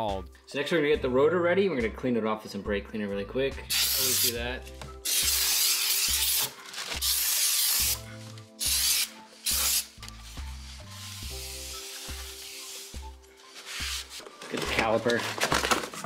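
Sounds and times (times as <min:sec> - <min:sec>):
aerosol spray hissing: 0:03.7 - 0:04.4, 0:05.0 - 0:10.0, 0:10.9 - 0:13.0.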